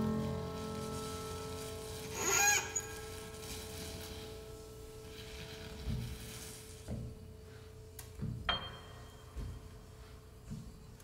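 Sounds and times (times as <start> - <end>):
resonant piano note ringing: 0.0 - 7.4, 8.4 - 10.1.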